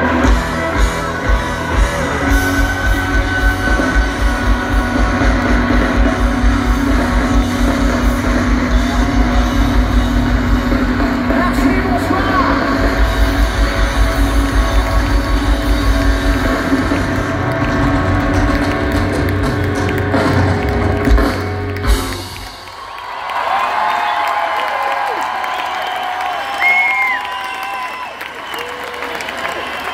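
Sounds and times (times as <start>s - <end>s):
live rock band playing: 0.0s - 23.0s
crowd cheering and shouting: 0.0s - 29.9s.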